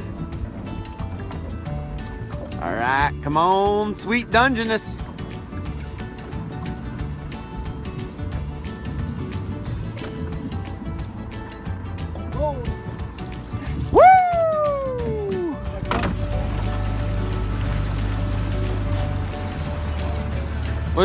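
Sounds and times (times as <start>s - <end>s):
background music: 0.0s - 21.0s
outboard boat motor running: 0.0s - 21.0s
falling whoop: 13.9s - 15.6s.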